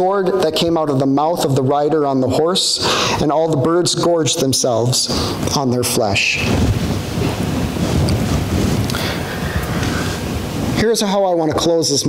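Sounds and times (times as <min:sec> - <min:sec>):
wind buffeting microphone: 0:05.2 - 0:11.6.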